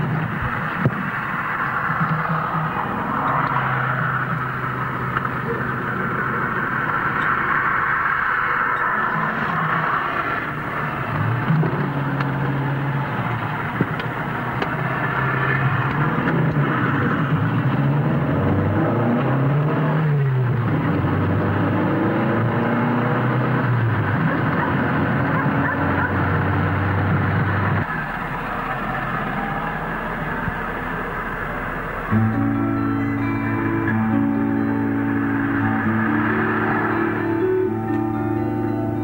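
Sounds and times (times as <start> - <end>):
car engine: 0.0 - 39.0
road noise: 0.0 - 39.0.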